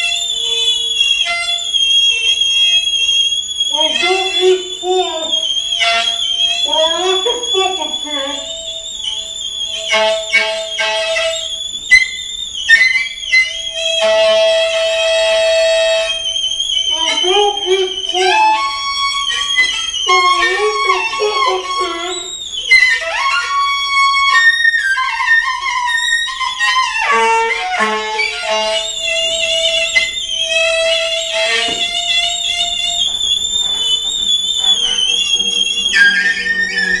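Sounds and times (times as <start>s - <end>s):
saxophone squeals: 0.0s - 37.0s
steady held tone: 0.0s - 37.0s
wavering gliding squeaks: 0.0s - 37.0s.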